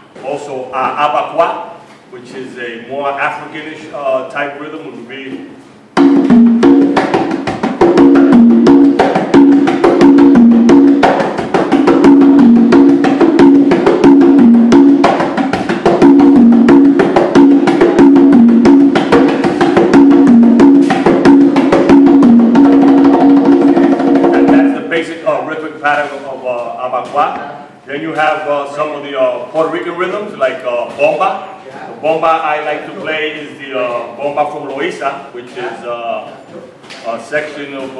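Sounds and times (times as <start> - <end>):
congas played by hand: 5.3 - 37.2.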